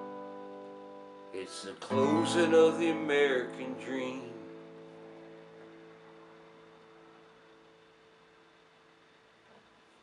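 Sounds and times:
acoustic guitar chord ringing: 0:00.0 - 0:08.5.

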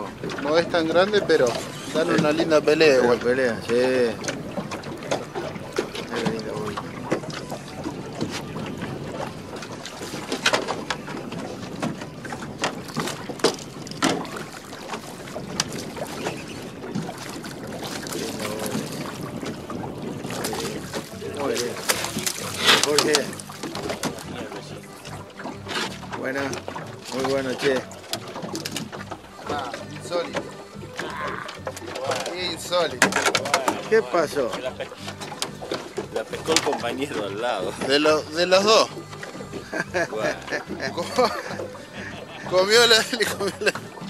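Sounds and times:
fish splashing: 0:00.0 - 0:44.0
water noise: 0:00.0 - 0:44.0
wind: 0:00.0 - 0:44.0.

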